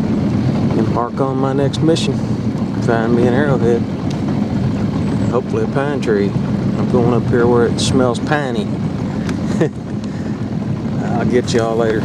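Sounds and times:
small boat motor running: 0.0s - 12.0s.

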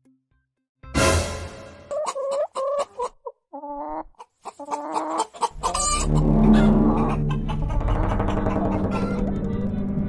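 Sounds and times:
music: 0.0s - 2.3s, 5.6s - 10.0s
hen clucking: 1.9s - 9.5s.

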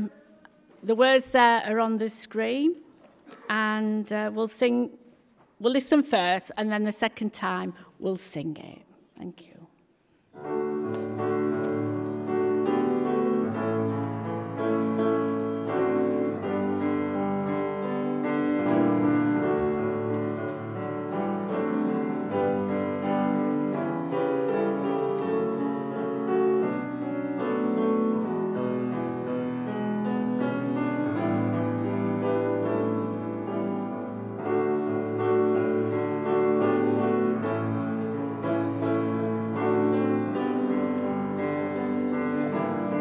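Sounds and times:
grand piano playing a hymn: 10.4s - 43.0s.

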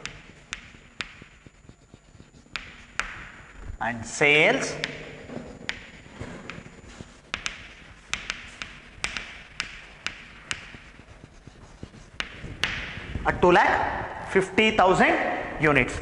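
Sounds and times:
chalk tapping and scratching: 0.0s - 14.1s.

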